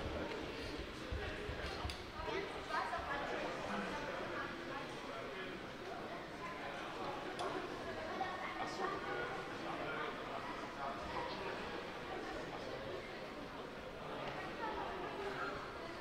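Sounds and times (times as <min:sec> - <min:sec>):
crowd chatter in echoing hall: 0:00.0 - 0:16.0.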